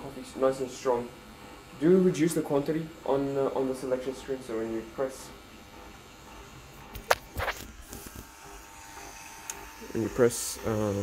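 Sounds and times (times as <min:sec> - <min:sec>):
brief rub: 0:07.0 - 0:08.3.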